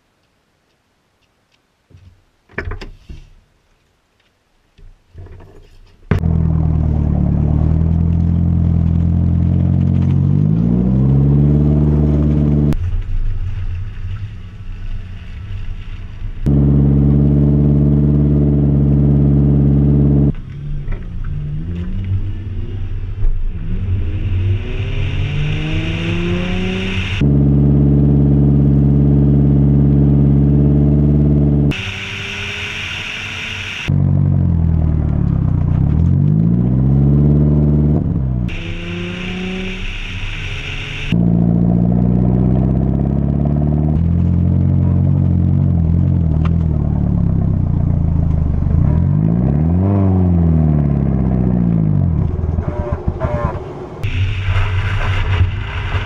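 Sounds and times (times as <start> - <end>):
car engine revving through gears: 6.2 - 12.8, 16.4 - 47.4, 48.6 - 54.1.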